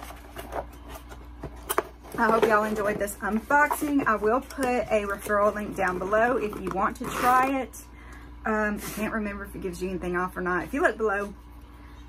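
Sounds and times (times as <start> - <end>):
cardboard packaging rustling: 0.0 - 7.5.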